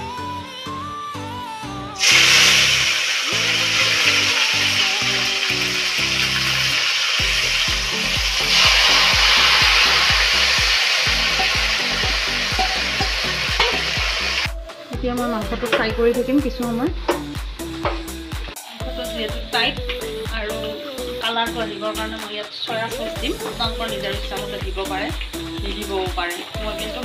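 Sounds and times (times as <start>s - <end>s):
meat sizzling in hot oil: 2.0s - 14.5s, 23.2s - 27.0s.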